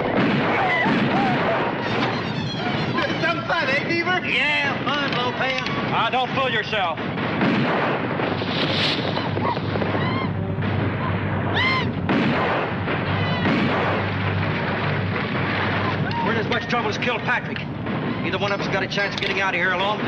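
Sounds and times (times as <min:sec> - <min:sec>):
gunfire din: 0:00.0 - 0:03.2, 0:04.7 - 0:20.0.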